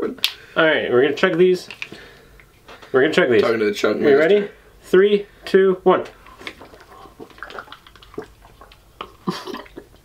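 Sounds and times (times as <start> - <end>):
people slurping and gulping: 6.1 - 10.0
swallowing: 6.1 - 10.0
small liquid clicks: 6.2 - 10.0.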